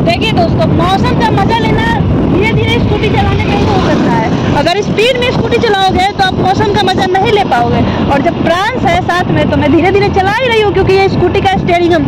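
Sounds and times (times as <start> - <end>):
wind on microphone: 0.0 - 12.0
woman talking: 0.0 - 12.0.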